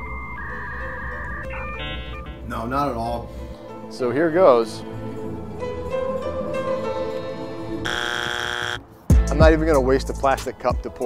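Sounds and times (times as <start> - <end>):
held synthesizer notes: 0.0 - 2.5.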